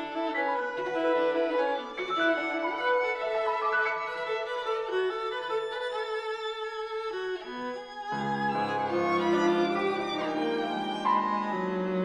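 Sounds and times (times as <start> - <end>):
violin sustained high notes: 0.0 - 12.0
piano trio music: 8.2 - 12.0.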